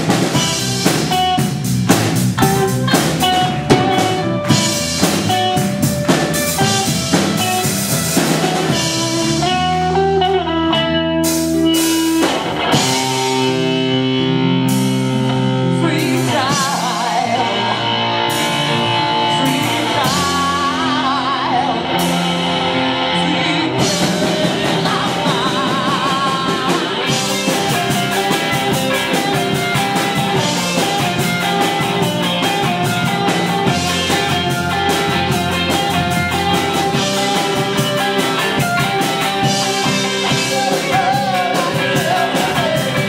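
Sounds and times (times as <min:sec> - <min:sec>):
drums fast beat: 0:00.0 - 0:09.8, 0:11.3 - 0:13.7, 0:23.8 - 0:43.0
live rock band playing: 0:00.0 - 0:43.0
person singing: 0:02.4 - 0:10.9, 0:15.4 - 0:43.0.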